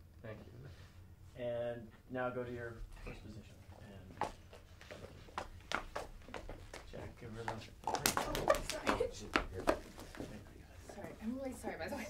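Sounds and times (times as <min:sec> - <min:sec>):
footsteps on stage floor: 0:04.1 - 0:10.4.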